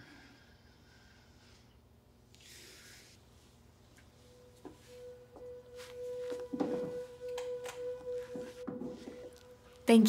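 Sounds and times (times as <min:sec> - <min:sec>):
sustained drone note: 0:04.0 - 0:10.0.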